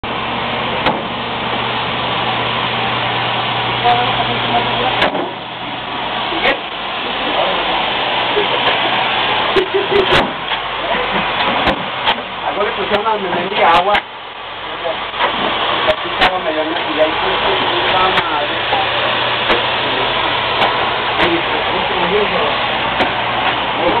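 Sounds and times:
ventilation blower rushing: 0.0s - 24.0s.

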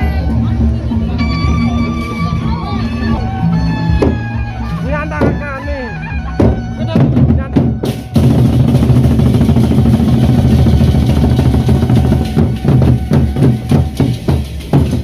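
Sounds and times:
barrel drums beaten: 3.9s - 4.4s, 5.0s - 5.5s, 6.3s - 15.0s.

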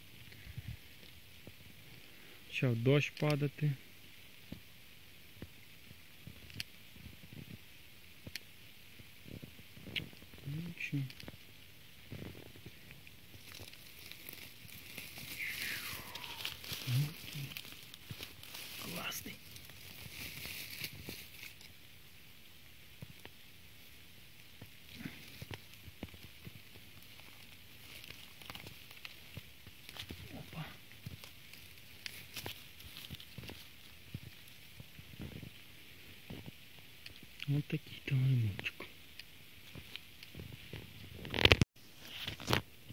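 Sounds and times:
dry leaves and twigs crackling: 0.0s - 42.9s.

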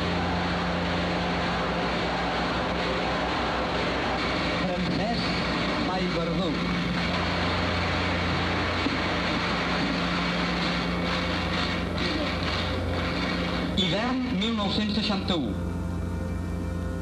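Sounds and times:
low hum: 0.0s - 17.0s.

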